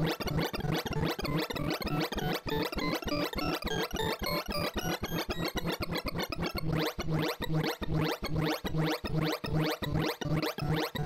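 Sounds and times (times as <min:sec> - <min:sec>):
synthesized beeps jumping in pitch: 0:00.6 - 0:11.0.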